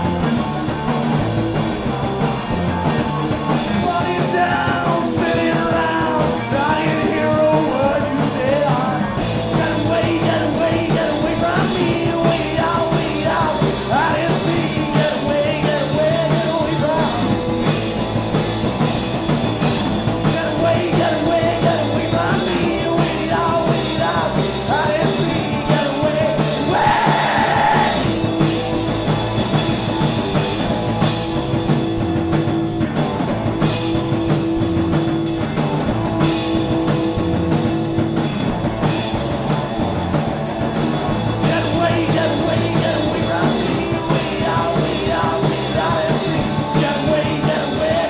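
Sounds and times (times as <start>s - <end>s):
bass: 0.0s - 48.0s
drum and cymbal hits: 0.0s - 48.0s
electric guitar: 0.0s - 48.0s
person singing: 3.6s - 17.4s, 20.2s - 28.2s, 41.4s - 48.0s.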